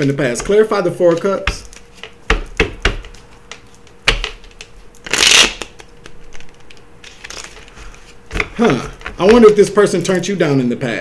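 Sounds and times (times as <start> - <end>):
cards snapping: 3.0 - 7.8
soft card handling: 3.2 - 8.2.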